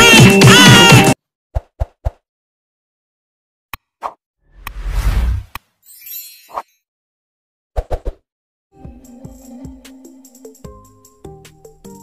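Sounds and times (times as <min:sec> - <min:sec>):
background music: 0:00.0 - 0:01.2, 0:08.8 - 0:12.0.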